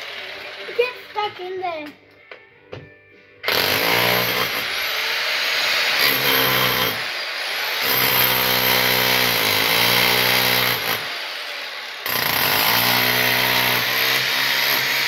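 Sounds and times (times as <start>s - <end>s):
demolition hammer chiselling tiles: 3.5s - 15.0s.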